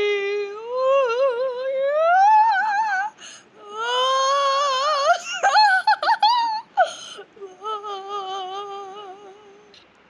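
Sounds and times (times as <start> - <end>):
high-pitched voice singing wordlessly: 7.4 - 9.7.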